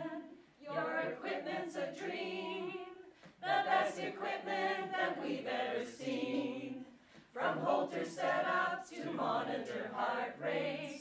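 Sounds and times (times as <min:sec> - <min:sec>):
choir singing a cappella: 0:00.0 - 0:11.0.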